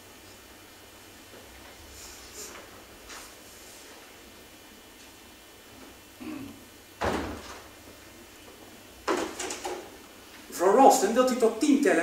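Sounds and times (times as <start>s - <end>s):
door shutting thump: 7.0s - 7.7s.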